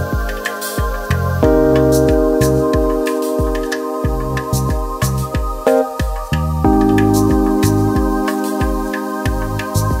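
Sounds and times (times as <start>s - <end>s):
chill house backing track: 0.0s - 10.0s
deep bass thump: 1.4s - 5.6s.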